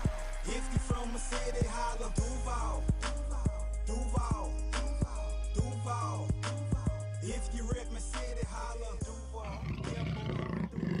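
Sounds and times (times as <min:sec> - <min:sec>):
background music: 0:00.0 - 0:11.0
big cat roar: 0:09.4 - 0:11.0.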